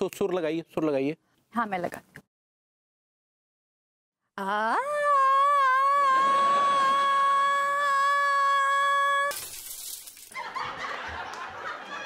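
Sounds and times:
woman singing a high note: 4.4s - 9.4s
canned sitcom laughter: 10.4s - 12.0s.

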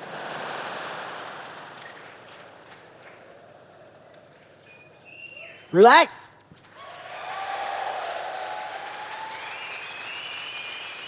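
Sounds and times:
audience applause: 6.6s - 11.0s.

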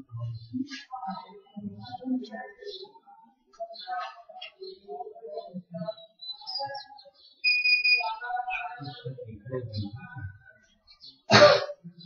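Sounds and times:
quiet voices in a room: 0.0s - 12.0s.

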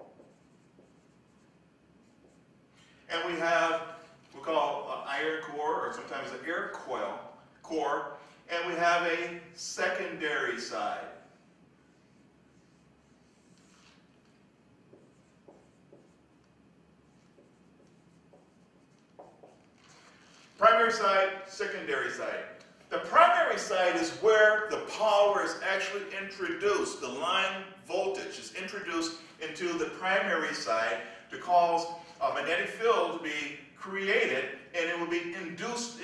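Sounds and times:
marker writing on a whiteboard: 0.0s - 4.4s, 9.9s - 21.4s.

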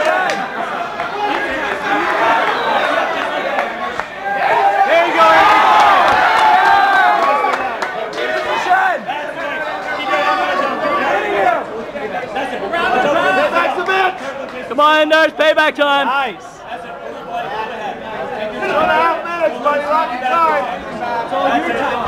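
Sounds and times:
crowd shouting and talking: 0.0s - 22.0s.

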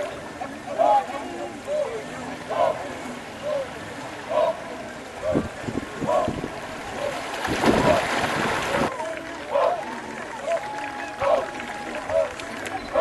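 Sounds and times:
paddles splashing in water: 0.0s - 13.0s.

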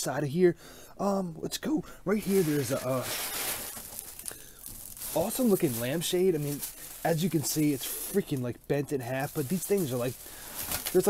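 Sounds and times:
plastic wrap crinkling: 2.2s - 11.0s.

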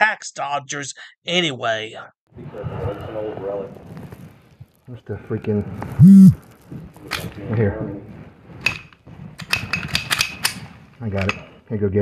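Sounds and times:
pistol metallic clicks and clacks: 9.4s - 10.6s.

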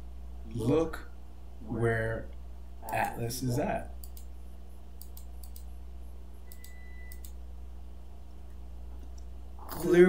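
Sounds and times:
low electrical hum: 0.0s - 10.0s
computer mouse clicks: 4.0s - 4.3s, 5.0s - 5.8s, 6.4s - 7.4s.

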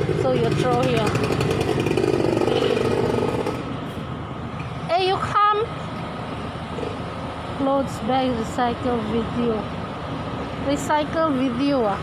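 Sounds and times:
engine running steadily: 0.0s - 12.0s.

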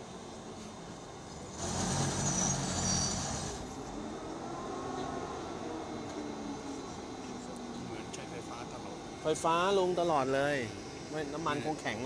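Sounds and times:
diesel locomotive engine: 0.0s - 12.0s.

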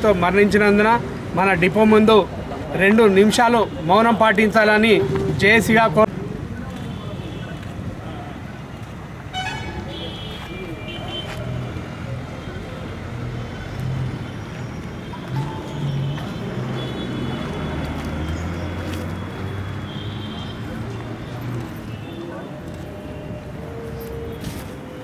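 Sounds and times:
vehicles passing: 0.0s - 25.0s
car horn toots: 9.3s - 11.3s.

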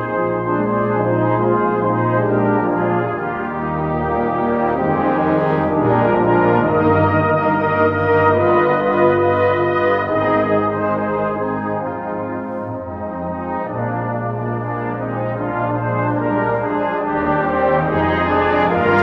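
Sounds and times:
brass ensemble playing hymn: 0.0s - 19.0s.

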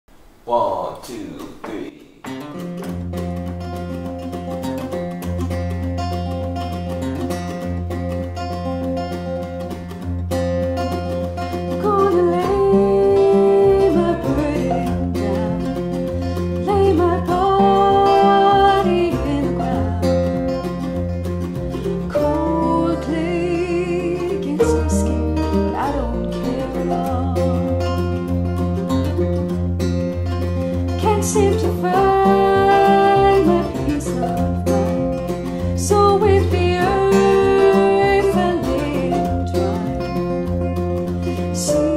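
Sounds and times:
dobro slide notes: 1.4s - 41.9s
bluegrass string band playing: 2.3s - 41.9s.

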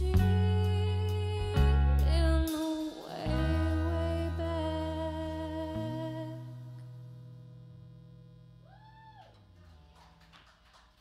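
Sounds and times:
electric guitar and bass chord ringing: 3.3s - 8.8s.

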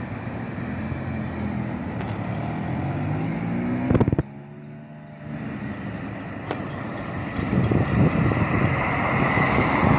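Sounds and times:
vehicle tire and engine noise: 0.0s - 9.9s.

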